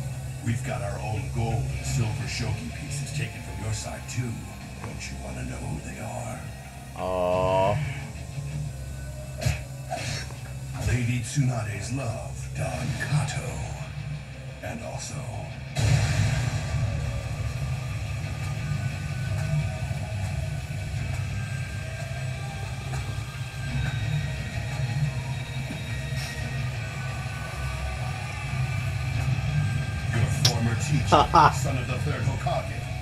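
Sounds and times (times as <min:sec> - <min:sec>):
tense anime background score: 0:00.0 - 0:33.0.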